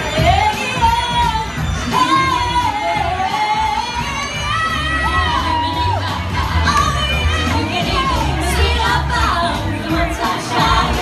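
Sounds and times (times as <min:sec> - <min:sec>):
amplified backing music with bass: 0:00.0 - 0:11.0
female vocal group singing: 0:00.0 - 0:11.0.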